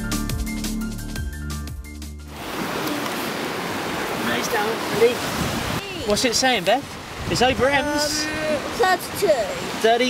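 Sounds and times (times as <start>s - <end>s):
sea surf against rocks: 2.3s - 10.0s.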